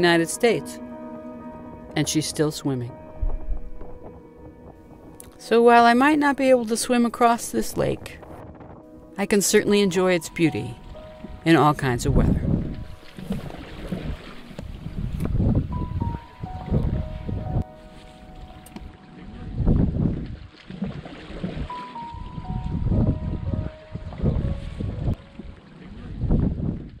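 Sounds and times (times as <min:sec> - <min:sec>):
soft background music: 0:00.0 - 0:26.4
lake water: 0:00.0 - 0:27.0
rushing wind: 0:07.6 - 0:09.1, 0:12.0 - 0:17.6, 0:19.5 - 0:25.3, 0:26.1 - 0:27.0.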